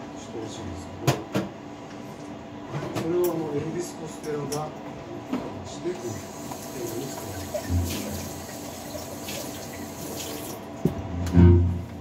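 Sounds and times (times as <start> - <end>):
acoustic guitar pluck: 7.7 - 8.1, 11.3 - 11.9.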